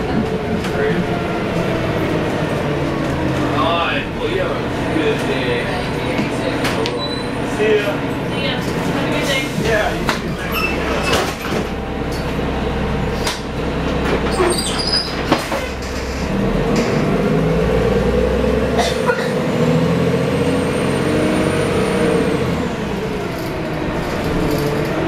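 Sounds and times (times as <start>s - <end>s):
bus diesel engine running: 0.0s - 25.0s.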